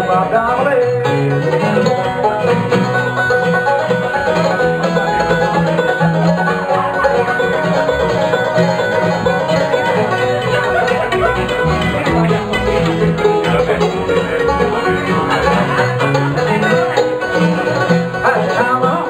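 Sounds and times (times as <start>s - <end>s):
acoustic guitar: 0.0s - 19.0s
mandolin: 0.0s - 19.0s
picked banjo: 0.0s - 19.0s
upright bass: 0.0s - 19.0s.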